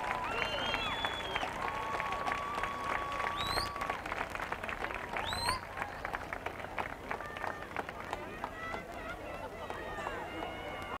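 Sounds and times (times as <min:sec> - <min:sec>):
crowd clapping: 0:00.0 - 0:11.0
crowd chatter: 0:04.6 - 0:11.0.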